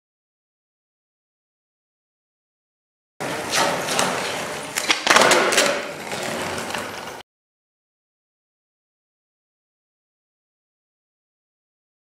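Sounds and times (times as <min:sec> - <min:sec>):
skateboard rolling on pavement: 0:03.2 - 0:07.2
skateboard clacking on ground: 0:03.5 - 0:07.2.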